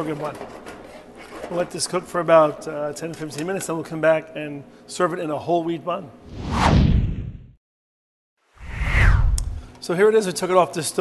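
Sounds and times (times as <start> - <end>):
downward whoosh effect: 8.6 - 9.7.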